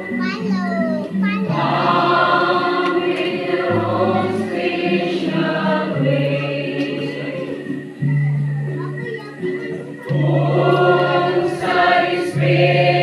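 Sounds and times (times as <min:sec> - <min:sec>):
church choir singing a hymn: 0:01.5 - 0:08.2, 0:10.0 - 0:13.0.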